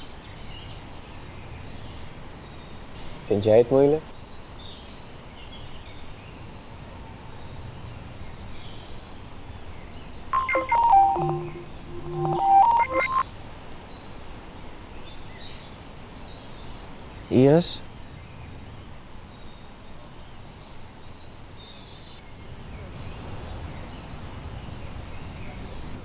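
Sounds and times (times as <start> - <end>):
outdoor background hiss: 0.0 - 26.0
electronic beep tones: 10.3 - 13.3.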